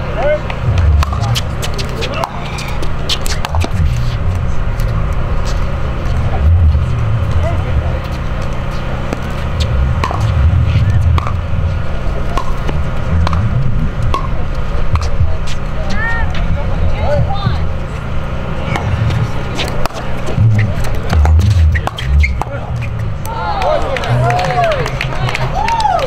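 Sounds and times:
low rumble: 0:00.0 - 0:26.0.

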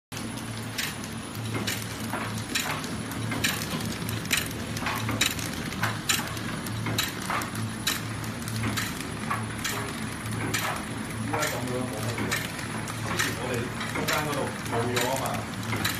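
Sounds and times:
mechanical clack: 0:00.2 - 0:15.9
packaging machine hum: 0:00.2 - 0:15.9.

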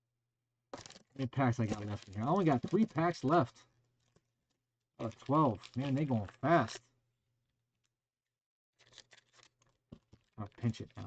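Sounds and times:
foil wrapper crinkling: 0:00.8 - 0:04.2, 0:05.0 - 0:06.8, 0:08.8 - 0:11.0.

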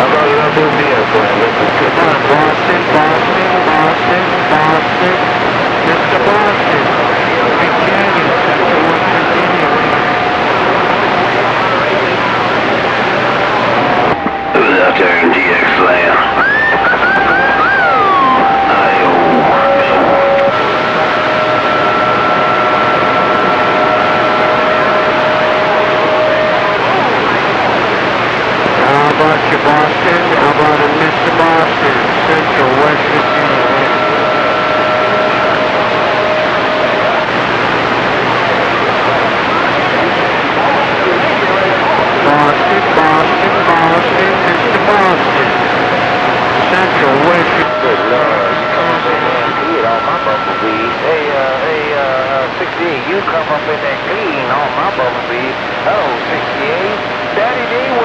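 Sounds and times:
garbled distant radio voices: 0:00.0 - 0:58.0
radio static hiss: 0:00.0 - 0:58.0
whistling radio tones: 0:13.8 - 0:27.8, 0:28.8 - 0:37.9, 0:42.2 - 0:58.0.

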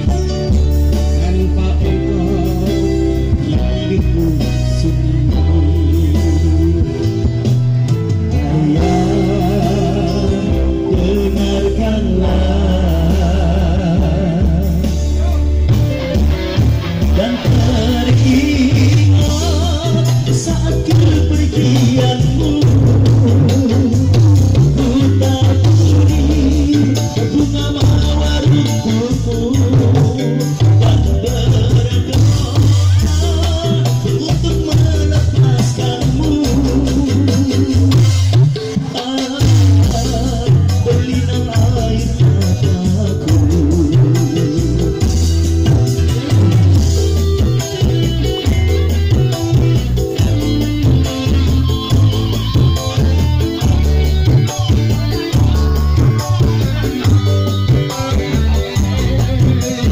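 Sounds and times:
live band playing: 0:00.0 - 0:59.9
person singing: 0:00.0 - 0:59.9.

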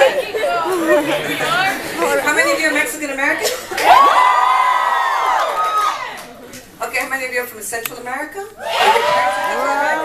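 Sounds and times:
people chattering: 0:00.0 - 0:04.8, 0:05.6 - 0:10.0.

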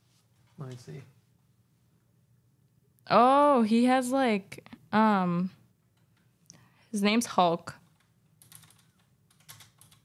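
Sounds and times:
typing on computer keyboard: 0:07.8 - 0:10.0.

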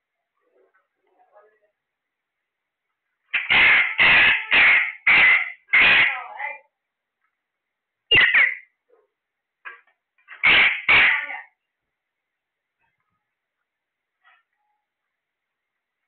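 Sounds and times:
parakeet short call: 0:03.3 - 0:06.2, 0:08.1 - 0:08.7
parakeet screeching: 0:03.4 - 0:06.3, 0:08.1 - 0:08.7, 0:10.4 - 0:11.4.

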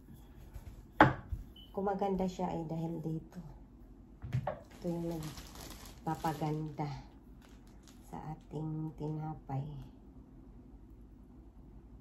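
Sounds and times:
woman speaking: 0:01.7 - 0:03.6, 0:04.7 - 0:07.2, 0:08.0 - 0:10.0.

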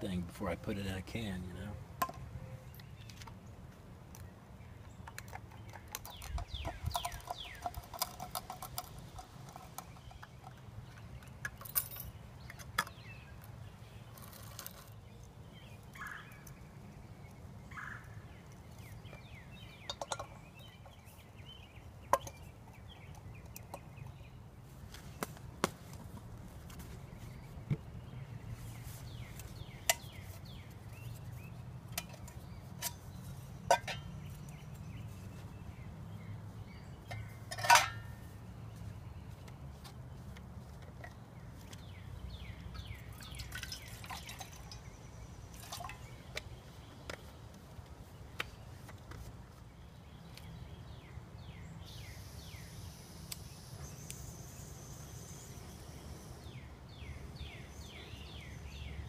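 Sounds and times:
cooking gear clicks and clinks: 0:05.0 - 0:13.0.

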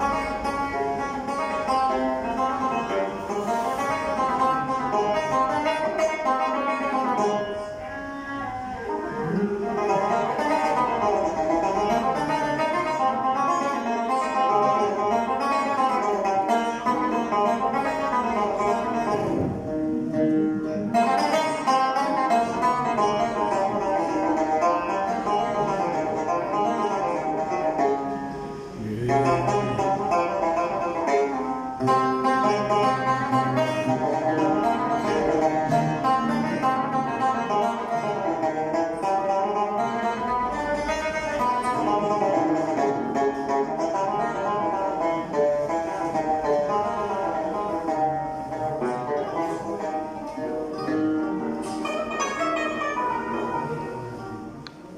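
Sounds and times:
plucked string ensemble melody: 0:00.0 - 0:54.9.

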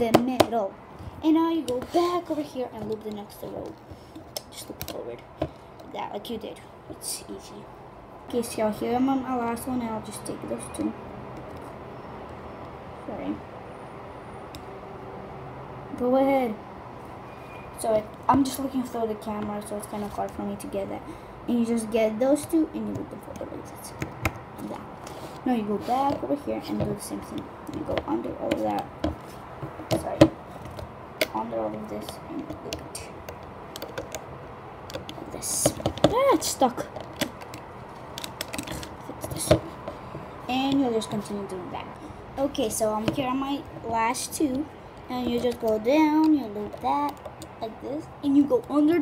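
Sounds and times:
low background rumble and hiss: 0:00.0 - 0:49.0
plastic hook tapping plastic pegs: 0:22.8 - 0:24.8, 0:26.0 - 0:34.3, 0:34.9 - 0:36.2, 0:44.5 - 0:47.5.

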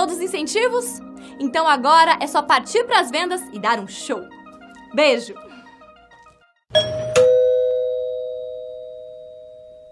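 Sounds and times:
two-note doorbell chime: 0:06.7 - 0:09.9.

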